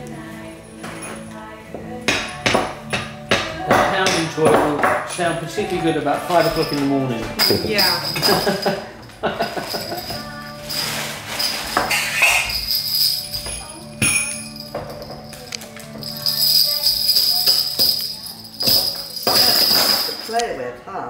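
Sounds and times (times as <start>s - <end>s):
people talking: 3.8s - 8.8s
jingle bell shaker: 5.3s - 20.4s.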